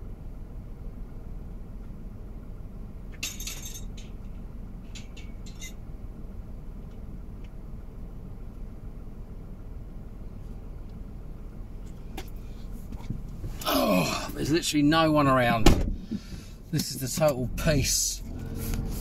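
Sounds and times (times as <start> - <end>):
car engine idling: 0.0 - 19.0
jangling clink: 3.2 - 4.2, 4.9 - 5.8.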